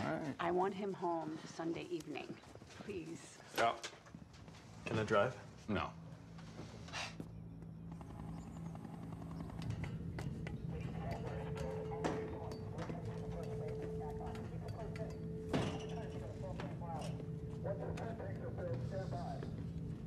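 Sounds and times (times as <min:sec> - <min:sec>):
industrial machinery hum: 0:04.7 - 0:20.0
faint indistinct voices: 0:10.5 - 0:19.7.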